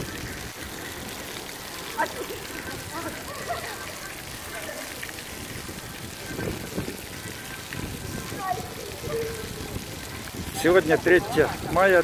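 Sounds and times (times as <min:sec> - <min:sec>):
fountain water jets splashing on stone: 0:00.0 - 0:12.0.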